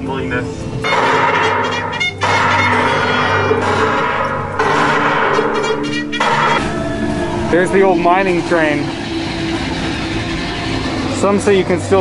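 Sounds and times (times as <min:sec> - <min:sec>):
roller coaster rolling on track: 0:05.5 - 0:12.0.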